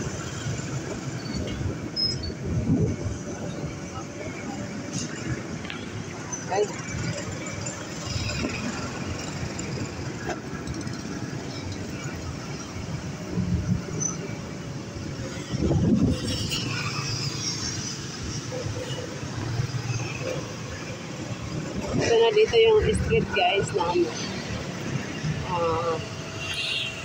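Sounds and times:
scooter engine and road rumble: 0.0 - 27.0.

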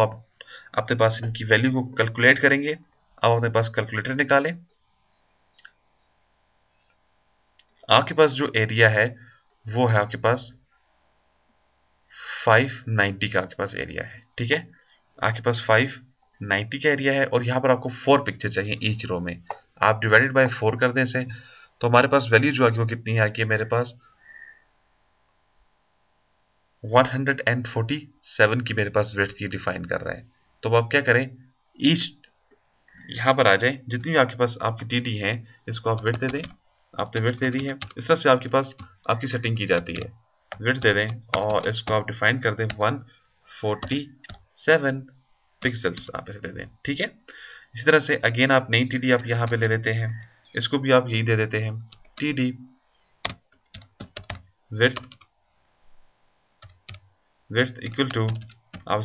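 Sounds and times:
keyboard keystrokes: 53.2 - 55.3.

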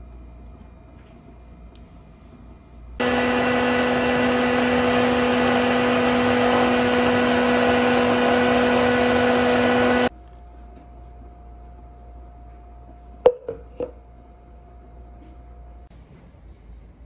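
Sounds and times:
stick blender running: 3.0 - 10.1.

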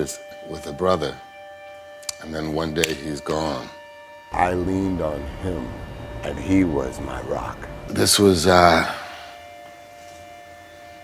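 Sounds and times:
held music note: 4.3 - 9.8.

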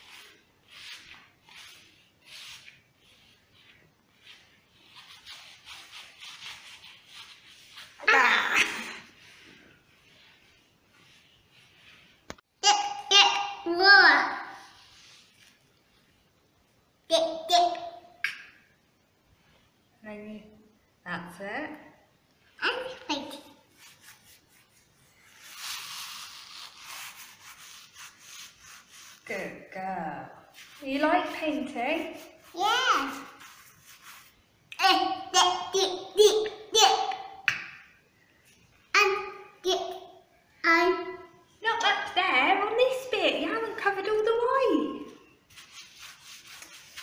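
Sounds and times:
paintbrush rubbing on wall: 0.0 - 12.4, 14.6 - 15.6, 22.6 - 29.6, 30.4 - 36.1, 45.2 - 47.0.

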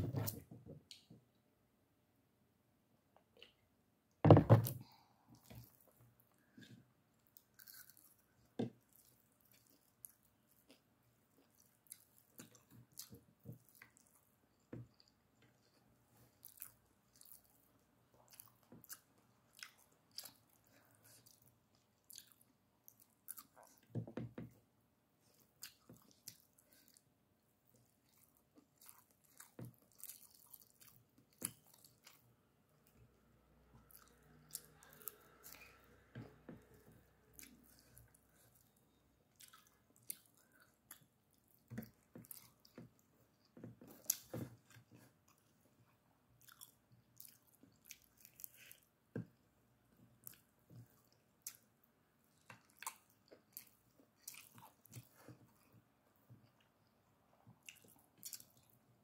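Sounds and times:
chewing rice: 5.4 - 23.9, 25.2 - 27.1, 27.7 - 45.8, 46.4 - 48.9, 50.2 - 51.7, 52.3 - 55.8, 57.6 - 58.8.

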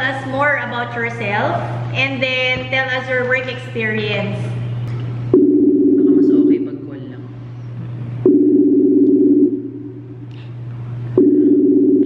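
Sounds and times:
constant low hum: 0.0 - 12.0
call ringing double tone: 5.3 - 6.7, 8.2 - 10.1, 11.2 - 12.0.

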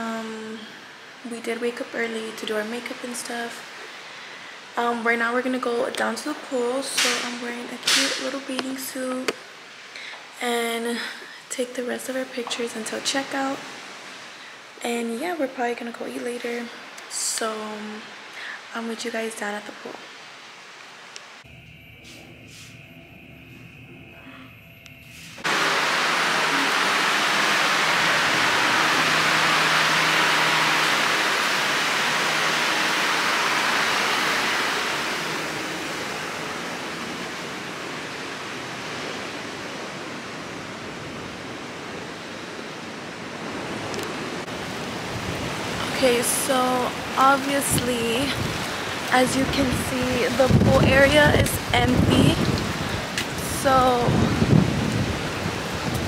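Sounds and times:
rushing hiss of water: 0.0 - 5.0, 6.3 - 15.4, 16.1 - 22.8, 25.0 - 56.0.

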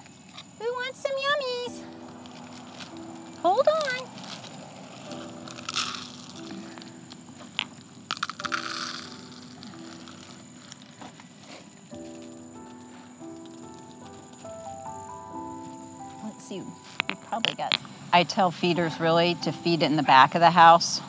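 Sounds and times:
background music with held notes: 1.4 - 21.0
plastic bag of cat food crinkling: 2.1 - 14.2.

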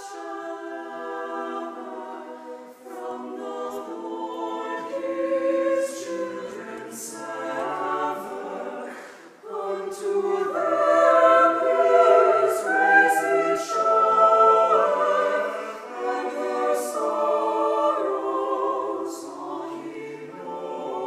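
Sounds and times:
choir singing a cappella: 0.0 - 21.0.

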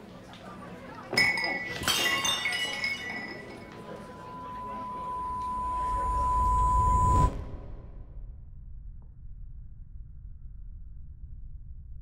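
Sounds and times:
glassware clinking: 1.1 - 4.8
steady high tone: 3.1 - 8.0
low rumble: 5.1 - 12.0.

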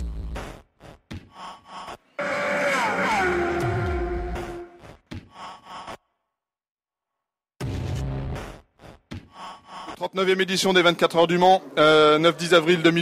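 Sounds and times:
tones sliding down in pitch: 2.2 - 4.8.

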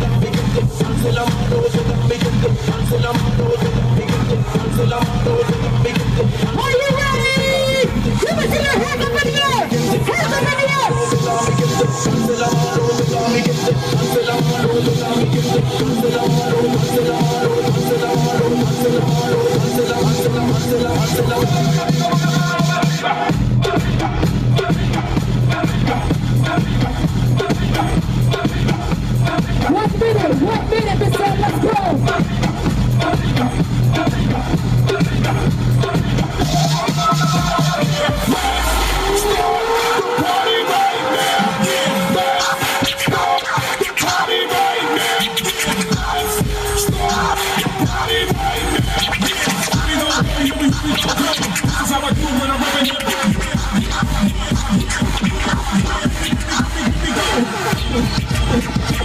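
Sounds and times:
loud dance music with bass beat: 0.0 - 59.0
wavering high melodic line: 8.7 - 14.1.

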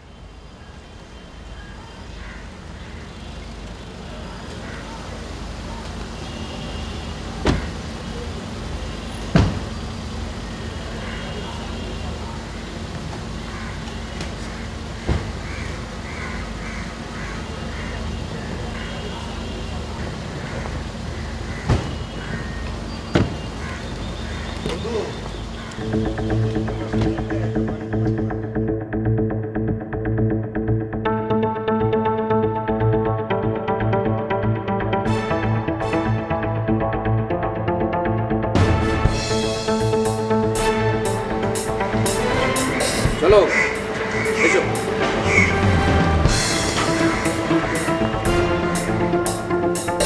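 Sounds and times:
low traffic rumble: 0.0 - 50.0.

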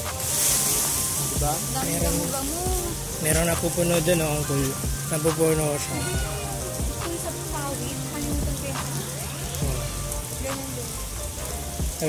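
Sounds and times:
water spraying and splashing: 0.0 - 12.0.

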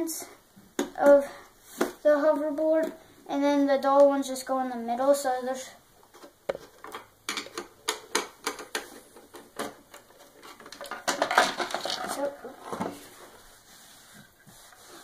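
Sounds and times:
plastic shell scraping rattle: 6.1 - 13.0.

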